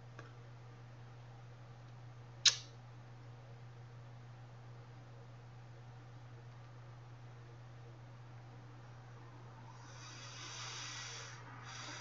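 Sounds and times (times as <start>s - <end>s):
steady low hum: 0.0s - 12.0s
breath into microphone: 9.7s - 12.0s.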